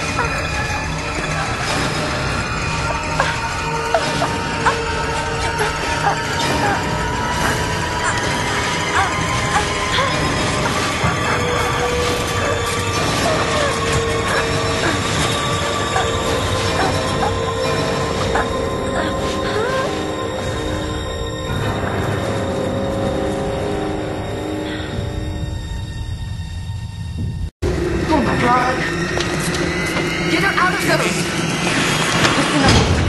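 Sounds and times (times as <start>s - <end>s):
dark soundtrack drone: 0.0s - 33.0s.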